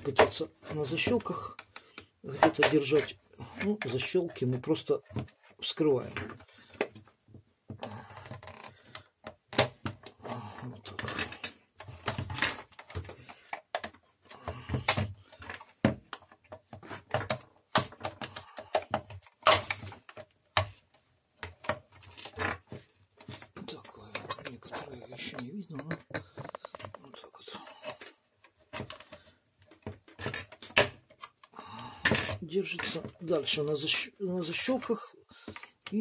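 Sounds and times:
rubbing and handling noise: 0.0 - 36.0
plastic housing clicks and knocks: 25.3 - 27.0.

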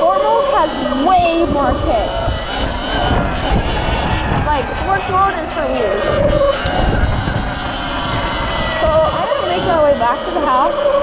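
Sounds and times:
electric motor whine: 0.0 - 11.0
wind buffeting microphone: 0.0 - 11.0.

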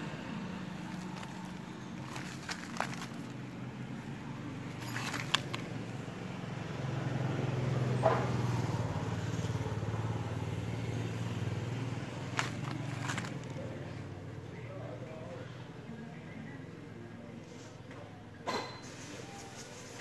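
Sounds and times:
vehicle engine humming: 0.0 - 15.2.

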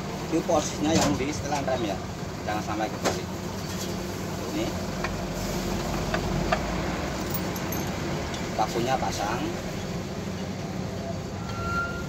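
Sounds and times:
thin high squeak: 11.4 - 12.0.

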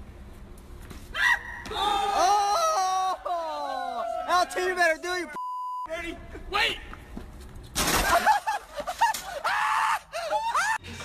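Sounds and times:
people yelling and laughing: 1.7 - 5.3, 8.0 - 10.8.

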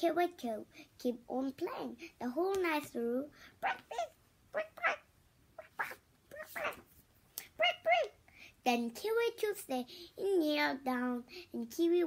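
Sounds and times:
girl reading aloud: 0.0 - 5.0, 5.8 - 6.8, 7.4 - 12.0.

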